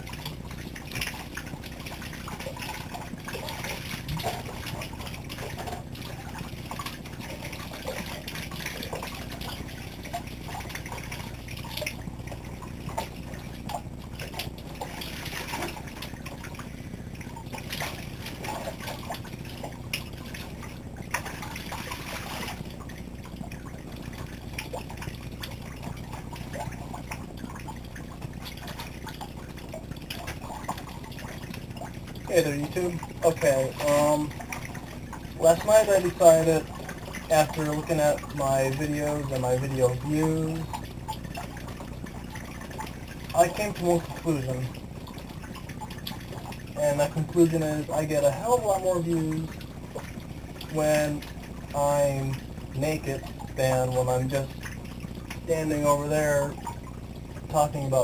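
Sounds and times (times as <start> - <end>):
shower water splashing on person: 0.0 - 58.0.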